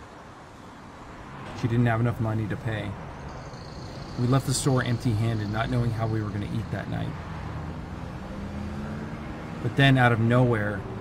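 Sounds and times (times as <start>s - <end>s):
low rumble of street traffic: 0.0s - 11.0s.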